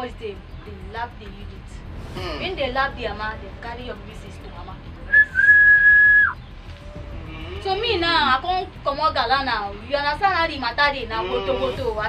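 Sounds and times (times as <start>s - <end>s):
high whistle: 5.1s - 6.4s.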